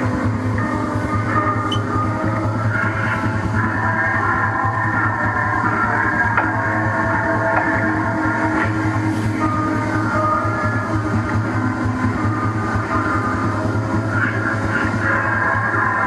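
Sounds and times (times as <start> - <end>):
low fluttering hum: 0.0 - 16.0
synthesizer noise music: 0.0 - 16.0.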